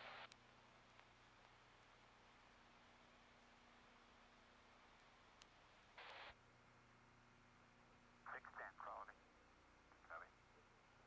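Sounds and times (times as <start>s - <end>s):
faint voice fragments: 8.3s - 9.2s.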